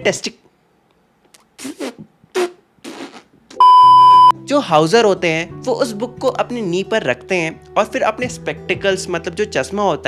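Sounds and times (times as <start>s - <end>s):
steady test tone beep: 3.6s - 4.4s.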